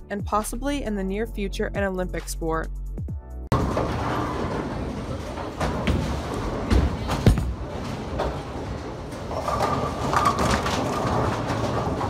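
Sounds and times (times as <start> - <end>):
bowling ball rolling down lane: 3.5 - 12.0.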